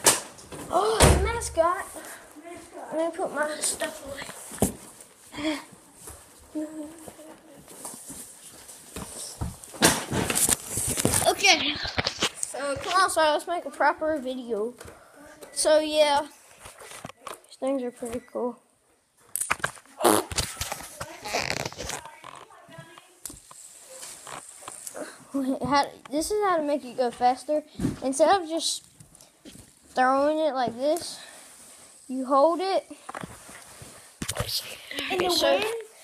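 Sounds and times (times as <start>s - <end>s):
boy talking: 0.7s - 4.4s, 6.5s - 7.8s, 11.2s - 11.8s, 12.5s - 16.4s, 17.2s - 18.6s, 25.0s - 28.8s, 30.0s - 31.2s, 32.1s - 33.0s, 34.5s - 36.0s.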